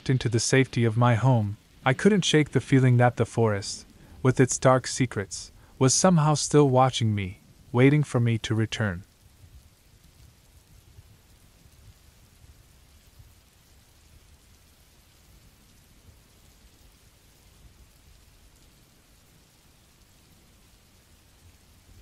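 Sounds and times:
rain hiss: 0.0s - 22.0s.

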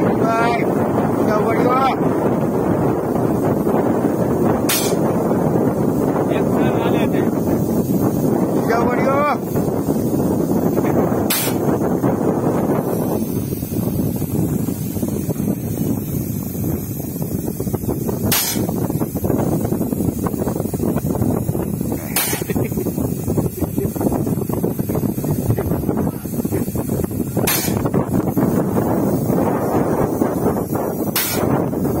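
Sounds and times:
paint sprayer low rumble: 0.0s - 32.0s
short sharp air hiss: 3.3s - 6.2s, 9.4s - 32.0s.

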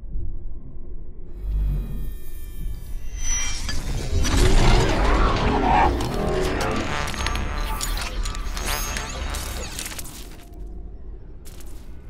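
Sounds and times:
deep rumble: 0.0s - 12.0s
noisy surge with sharp cracks: 4.0s - 9.7s.

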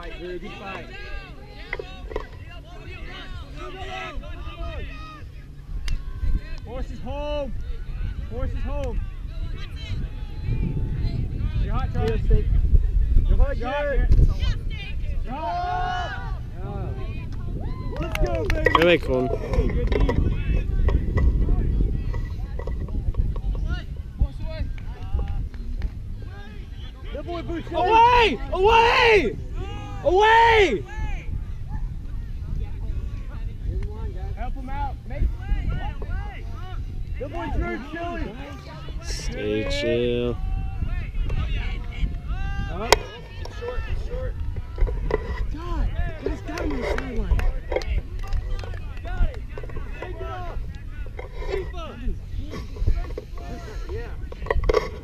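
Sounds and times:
distant shouts and talk: 0.0s - 55.0s
wind buffeting microphone: 0.0s - 55.0s
people shouting: 14.4s - 17.0s, 26.3s - 31.9s, 39.7s - 44.8s.

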